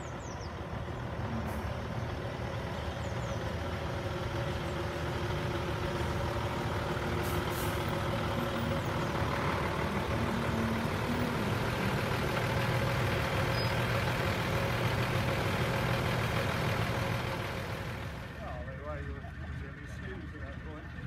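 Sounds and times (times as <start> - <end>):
diesel lorry engine running: 0.0 - 21.0
air brakes hissing: 7.1 - 8.1.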